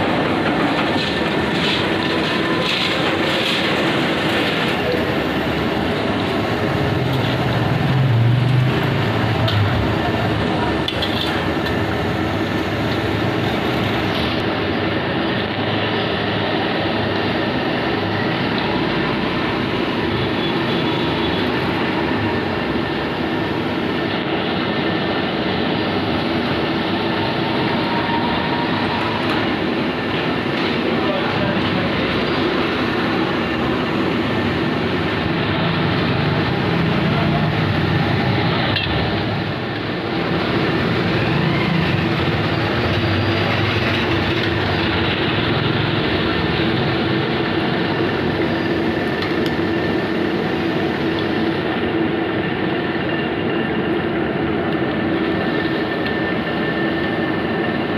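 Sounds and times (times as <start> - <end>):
gas burner running: 0.0 - 57.9.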